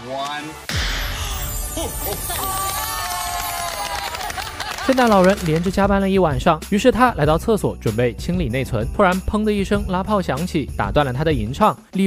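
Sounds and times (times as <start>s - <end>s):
cracker bang: 0.7s - 2.8s
people cheering and whooping: 1.2s - 5.5s.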